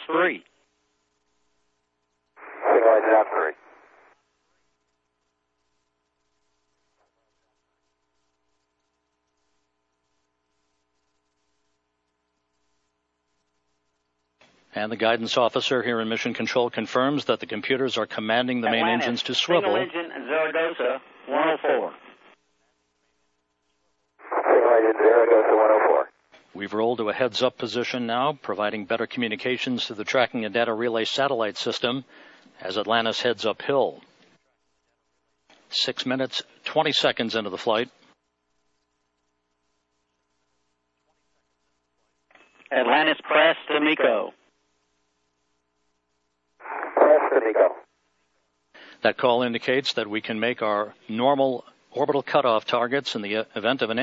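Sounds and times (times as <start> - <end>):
voice over tinny radio: 2.4 - 3.7, 18.6 - 22.1, 24.2 - 26.1, 42.7 - 44.3, 46.6 - 47.9.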